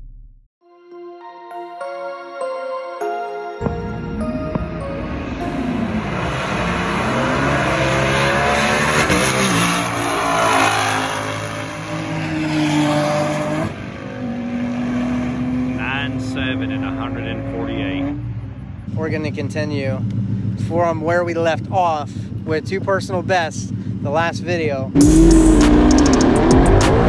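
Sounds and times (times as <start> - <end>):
car engine accelerating hard: 4.2 - 27.0.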